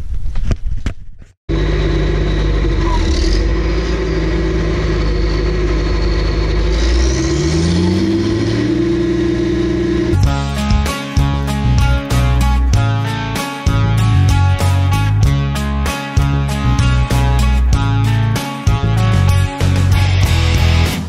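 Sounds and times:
tractor engine running: 1.5s - 21.0s.

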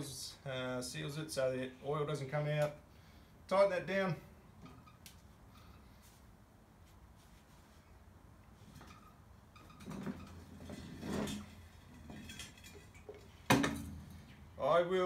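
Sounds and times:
mower scraping on concrete floor: 9.8s - 13.0s.

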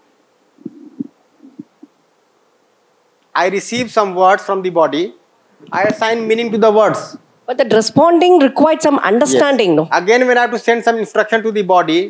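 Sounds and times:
person speaking: 0.6s - 1.9s, 3.4s - 12.0s
soft low thumps: 0.6s - 1.9s.

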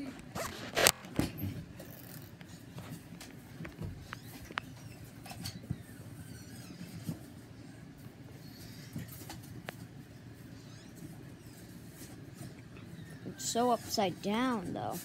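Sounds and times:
rustling and scratching handling noise: 0.0s - 15.0s.

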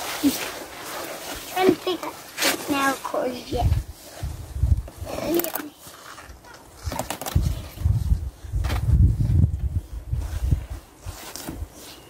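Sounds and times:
wind rumble on microphone: 3.5s - 5.2s, 7.3s - 11.0s.

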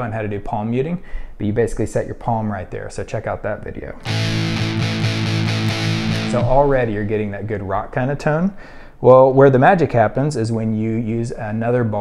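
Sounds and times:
distorted electric guitar chord: 4.0s - 6.6s.

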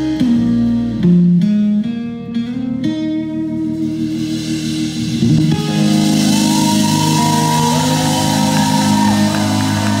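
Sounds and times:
rock band playing sustained chords: 0.0s - 10.0s
sliding steel guitar notes: 0.0s - 10.0s.

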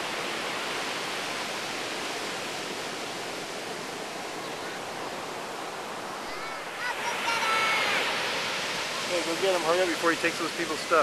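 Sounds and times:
heavy surf breaking: 0.0s - 11.0s.

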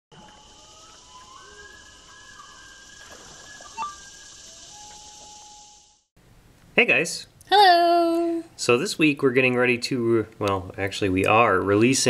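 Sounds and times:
steady high hiss: 0.2s - 6.1s.

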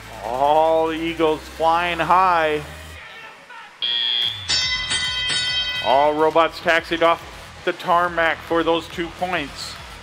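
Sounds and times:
bell-like chime: 3.8s - 6.4s
high electronic tone: 3.8s - 6.4s.

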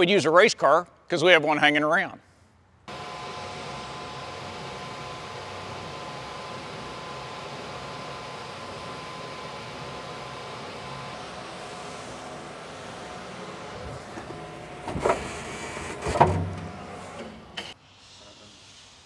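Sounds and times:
electric hoist humming and whining: 2.9s - 17.8s.

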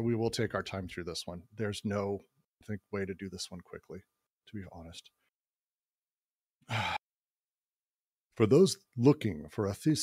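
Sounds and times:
person sighing: 6.6s - 7.2s.

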